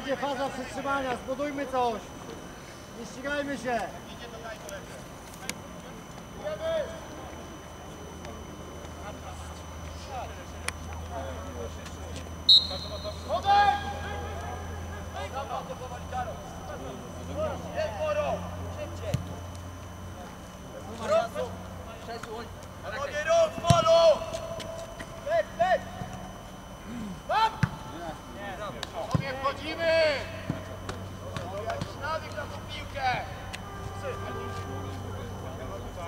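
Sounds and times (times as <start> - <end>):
players shouting calls: 12.3 - 20.0, 20.9 - 36.0.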